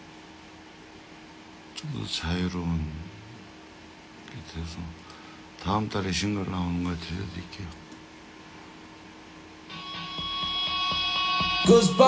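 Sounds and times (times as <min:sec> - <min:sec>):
recorded song with light beat: 0:09.7 - 0:12.0.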